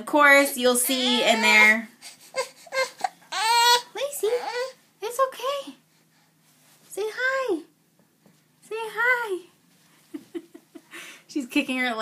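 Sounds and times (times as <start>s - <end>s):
baby whimpering and crying: 0.8s - 4.8s.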